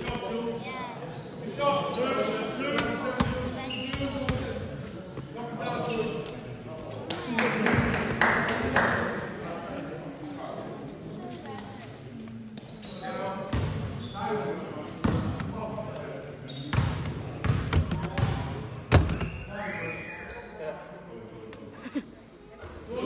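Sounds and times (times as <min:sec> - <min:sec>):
players' voices: 0:00.0 - 0:23.0
basketball bouncing on court floor: 0:16.7 - 0:19.2.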